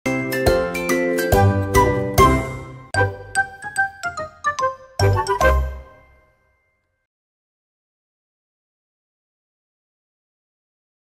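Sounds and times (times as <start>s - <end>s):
chiming bell-like jingle: 5.0s - 7.1s.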